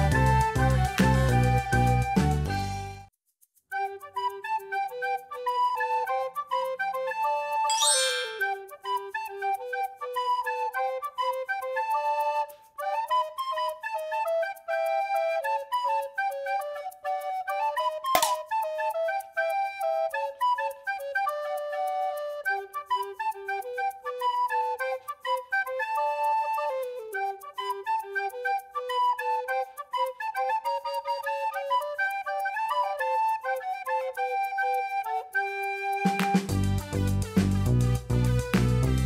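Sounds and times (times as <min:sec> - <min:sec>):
flute-like melody: 0:00.0 - 0:03.1, 0:03.7 - 0:39.0
sharp click: 0:18.2 - 0:18.5.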